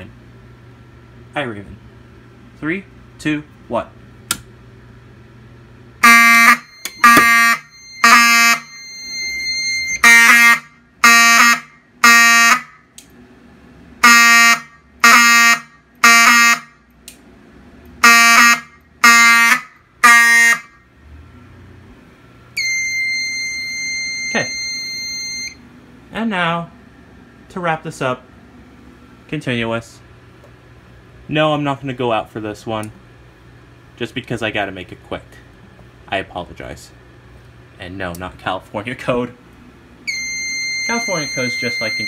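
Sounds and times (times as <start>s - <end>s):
steady high-pitched tone: 6.0s - 11.6s, 22.6s - 25.6s, 40.1s - 42.0s
fire alarm horn blasts: 6.0s - 12.9s, 14.0s - 16.9s, 18.0s - 20.9s, 22.6s - 25.6s, 40.0s - 42.0s
fire alarm pull station click: 6.7s - 7.4s.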